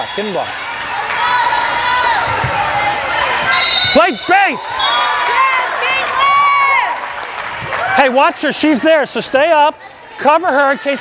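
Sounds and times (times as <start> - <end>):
chatter of voices in hall: 0.0 - 3.9.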